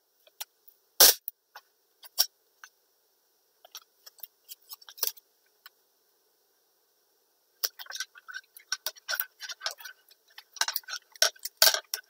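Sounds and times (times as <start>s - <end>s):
masking tape clicks and crackles: 7.6s - 12.0s.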